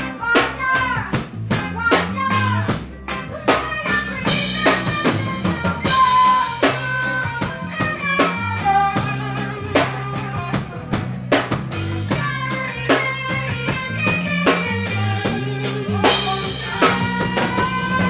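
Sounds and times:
reggae band playing: 0.0s - 18.0s.

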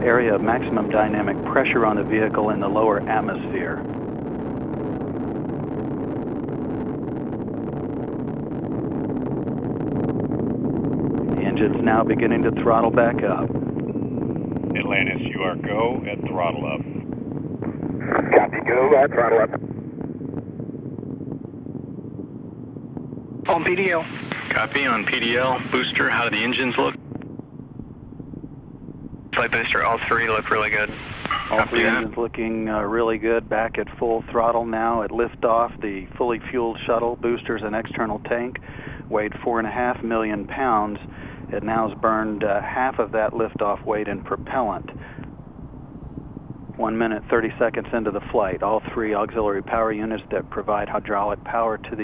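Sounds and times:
crackling rocket roar: 0.0s - 52.0s
low steady rumbling: 0.0s - 52.0s
faint hiss: 23.5s - 27.0s, 29.4s - 45.4s.

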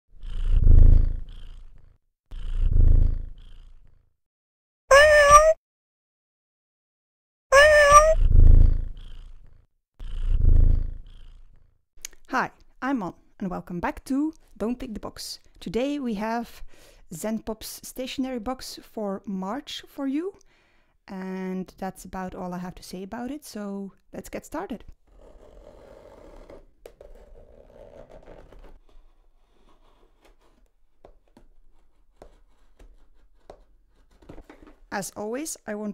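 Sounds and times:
cat purring: 0.2s - 4.0s, 8.2s - 11.7s.

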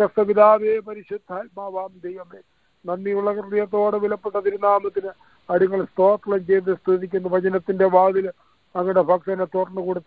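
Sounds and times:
person talking over phone line: 0.0s - 10.0s.

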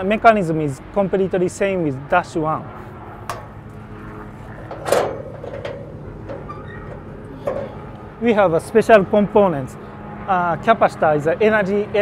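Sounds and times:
steel door clunking open: 4.5s - 8.0s.

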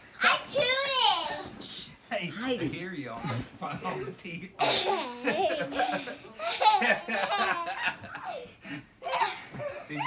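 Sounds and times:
girl giggling: 3.8s - 10.0s.

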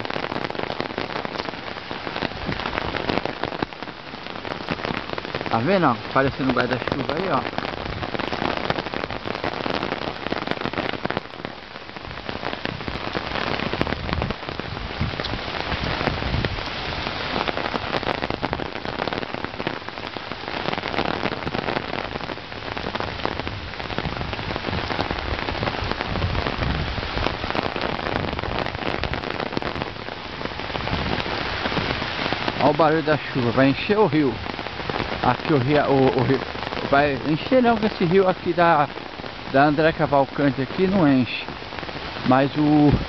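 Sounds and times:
heavy rain on umbrella: 0.0s - 43.0s.

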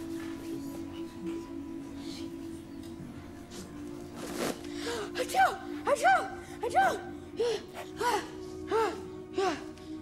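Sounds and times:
soft background music: 0.0s - 10.0s
breathing: 4.7s - 5.1s.

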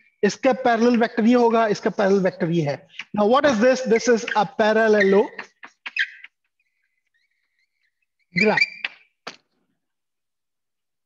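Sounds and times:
marker squeaking on a board: 2.8s - 9.6s.

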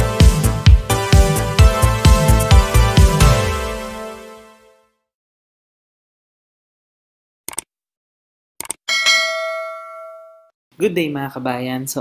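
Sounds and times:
notification bell ding: 8.9s - 10.5s.

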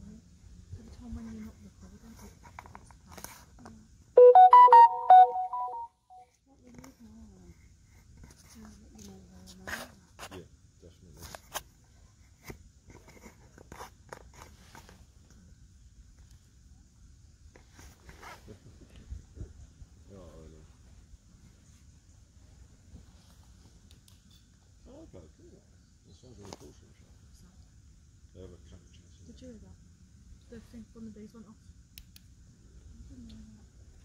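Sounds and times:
electronic device beeping: 4.2s - 5.9s
faint crackles and snaps: 23.8s - 24.3s, 31.9s - 32.3s.

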